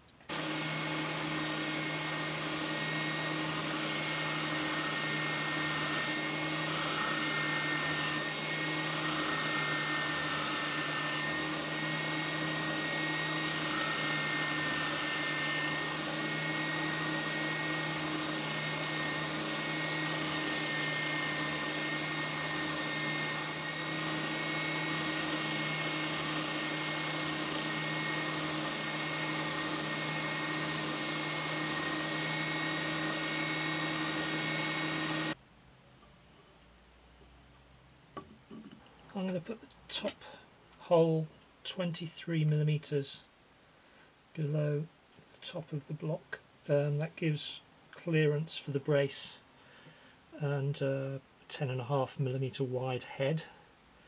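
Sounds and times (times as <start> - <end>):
spindle sander motor hum: 0.2 - 35.4.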